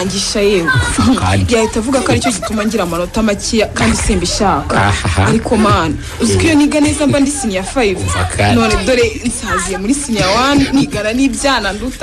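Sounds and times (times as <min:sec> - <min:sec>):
voices speaking: 0:00.0 - 0:12.0.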